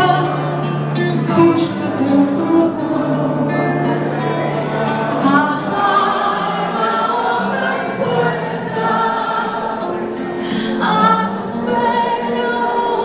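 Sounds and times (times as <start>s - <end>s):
audience singing together: 0.0s - 13.0s
music: 0.0s - 13.0s
woman singing lead amplified: 0.0s - 13.0s.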